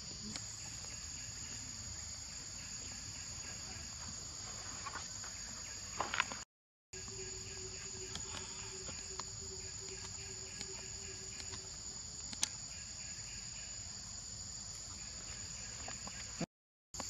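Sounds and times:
insect chorus: 0:00.0 - 0:06.4, 0:07.0 - 0:17.0.

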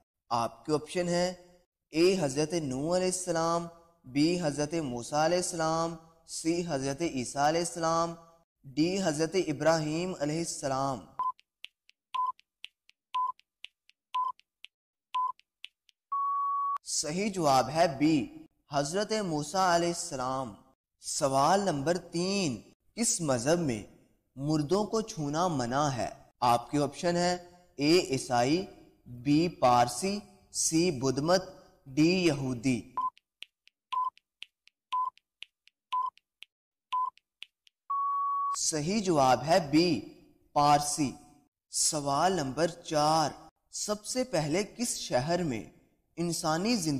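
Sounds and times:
faint timer ticks: 0:10.5 - 0:16.0, 0:32.6 - 0:37.8
short electronic beeps: 0:12.2 - 0:12.4, 0:13.2 - 0:13.4, 0:14.2 - 0:14.4, 0:15.2 - 0:15.4, 0:16.1 - 0:16.8, 0:33.0 - 0:33.2, 0:33.9 - 0:34.2, 0:34.9 - 0:35.2, 0:35.9 - 0:36.2, 0:36.9 - 0:37.2, 0:37.9 - 0:38.6
longer higher beep: 0:16.1 - 0:16.8, 0:37.9 - 0:38.6.

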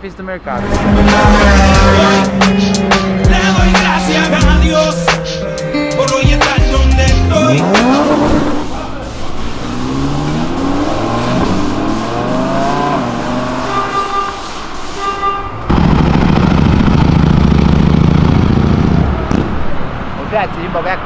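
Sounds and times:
car accelerating: 0:00.5 - 0:14.9, 0:15.6 - 0:20.1
car horn toots: 0:00.6 - 0:03.5, 0:11.4 - 0:15.7
motorcycle passing: 0:00.6 - 0:05.4, 0:15.7 - 0:19.8.

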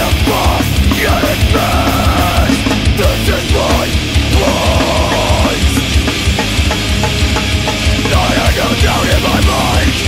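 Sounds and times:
distorted electric guitar: 0:00.0 - 0:10.0
drums with fast kick drum: 0:00.0 - 0:10.0.

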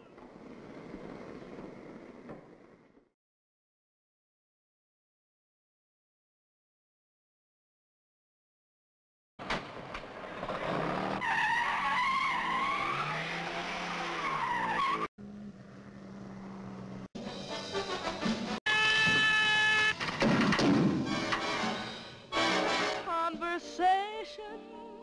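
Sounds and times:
tyres squealing: 0:18.7 - 0:20.2.

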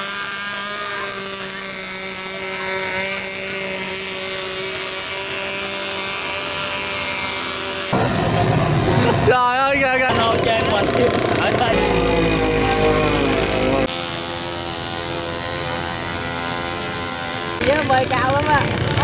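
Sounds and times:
model boat motor whining: 0:00.0 - 0:19.0
street noise: 0:07.1 - 0:19.0
voices: 0:17.6 - 0:19.0.

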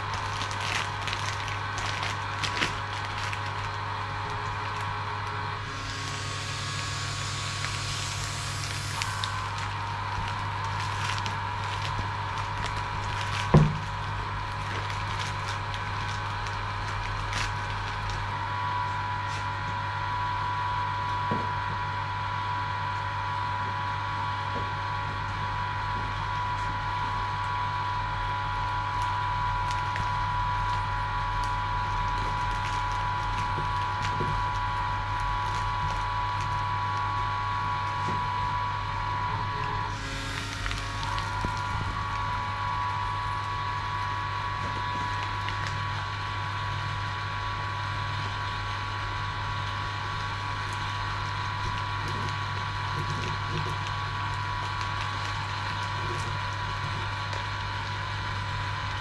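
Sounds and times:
plastic film crinkling: 0:00.0 - 0:18.5, 0:25.9 - 0:59.0
vacuum pump humming and whining: 0:00.0 - 0:59.0.

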